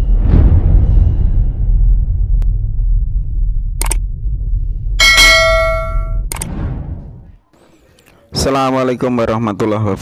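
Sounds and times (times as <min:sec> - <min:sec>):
bell-like ding: 0:05.0 - 0:06.2.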